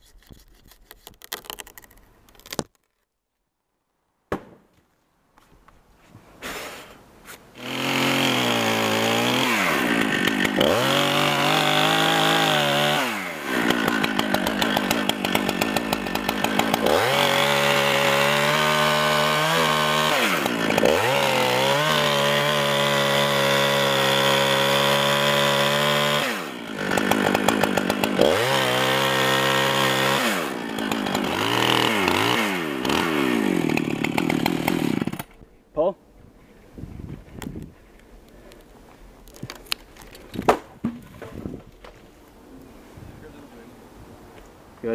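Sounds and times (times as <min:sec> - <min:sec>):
chainsaw cutting wood: 0:06.4 - 0:35.4.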